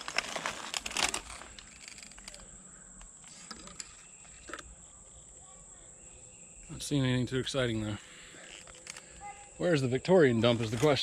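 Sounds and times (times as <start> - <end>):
footsteps crunching dry leaves: 0.0 - 1.6
high insect drone: 0.0 - 11.0.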